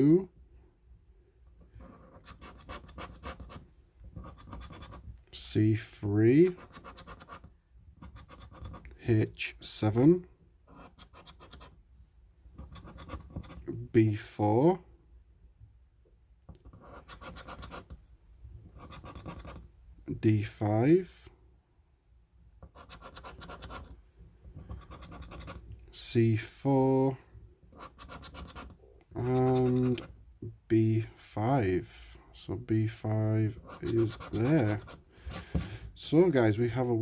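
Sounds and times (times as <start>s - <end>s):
plastic scraper rubbing scratch card: 2.1s - 5.1s, 6.5s - 8.9s, 12.6s - 13.7s, 16.7s - 18.0s, 18.8s - 19.6s, 22.6s - 24.0s, 24.6s - 25.6s, 27.8s - 30.1s, 33.6s - 35.7s.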